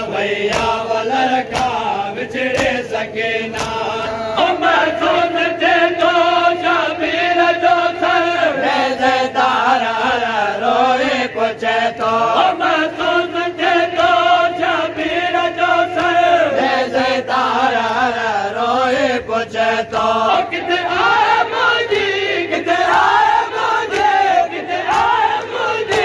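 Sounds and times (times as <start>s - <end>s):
men chanting a lament: 0.0s - 26.0s.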